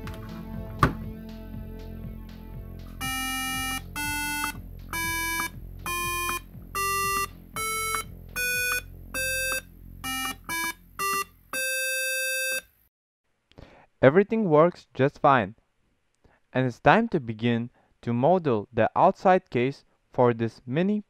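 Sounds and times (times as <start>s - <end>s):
electronic square-wave beeps: 3.0s - 12.7s.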